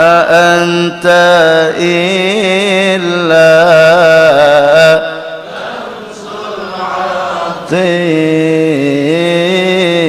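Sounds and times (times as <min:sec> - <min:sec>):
man singing into microphone: 0:00.0 - 0:05.4, 0:06.6 - 0:10.0.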